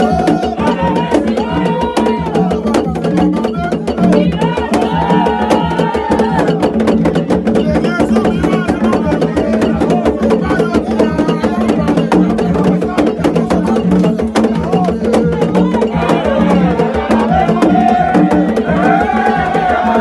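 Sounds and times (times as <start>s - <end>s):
man singing: 0.0s - 6.6s, 7.5s - 20.0s
fast hand drums: 0.0s - 20.0s.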